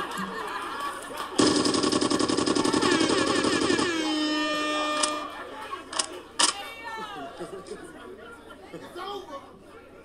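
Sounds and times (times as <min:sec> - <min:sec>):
rapid rattling burst: 0:01.4 - 0:04.1.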